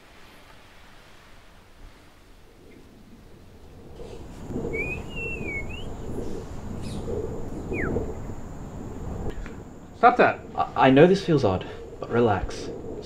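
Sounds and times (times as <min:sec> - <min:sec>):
faint high whine: 0:02.6 - 0:11.4
low pulsing rumbling drone: 0:03.0 - 0:10.0
bird chirping: 0:04.0 - 0:08.3.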